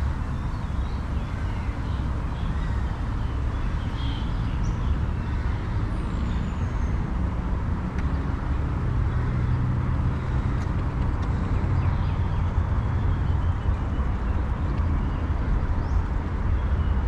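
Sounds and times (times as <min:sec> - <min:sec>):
distant road traffic rumble: 0:00.0 - 0:17.0.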